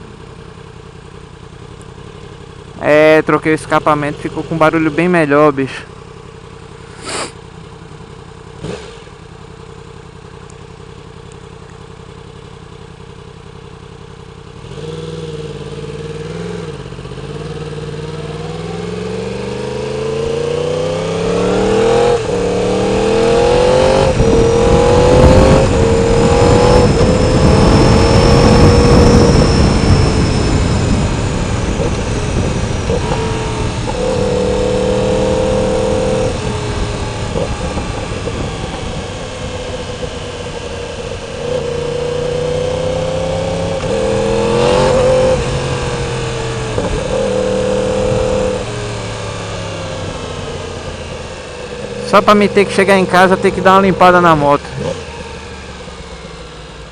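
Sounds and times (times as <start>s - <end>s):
motorcycle engine revving: 0.0s - 56.9s.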